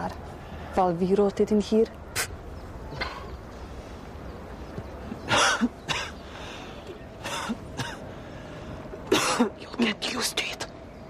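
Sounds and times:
woman coughing: 5.3s - 6.2s, 7.2s - 8.0s, 9.1s - 9.6s.

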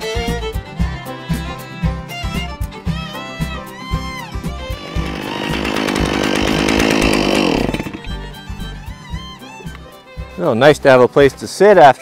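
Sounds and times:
violin background music: 0.0s - 12.0s
chainsaw running at high revs: 4.7s - 8.3s.

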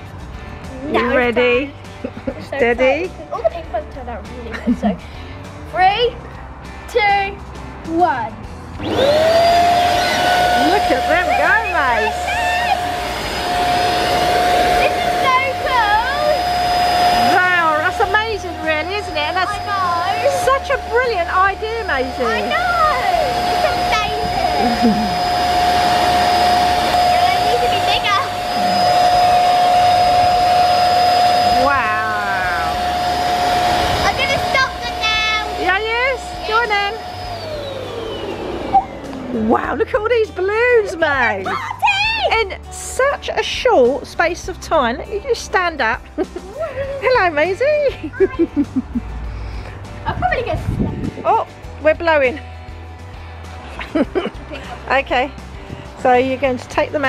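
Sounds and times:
electric balloon pump whining: 8.8s - 42.4s.

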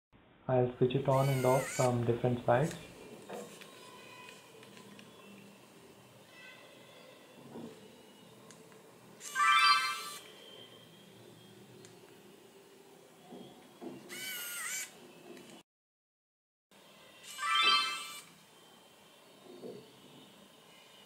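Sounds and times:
faint camera clicks: 3.4s - 5.2s.

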